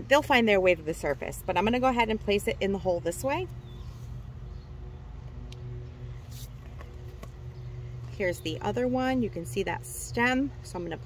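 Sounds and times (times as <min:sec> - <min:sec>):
low machinery hum: 0:00.0 - 0:11.0
soft scuffs in loose soil: 0:06.2 - 0:07.2.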